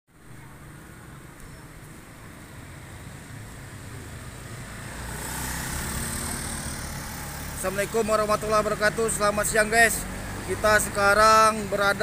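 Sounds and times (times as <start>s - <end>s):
small motorcycles passing: 0.2s - 12.0s.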